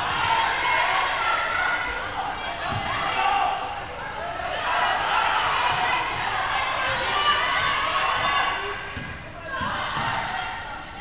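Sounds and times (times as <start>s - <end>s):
voices echoing: 0.0s - 11.0s.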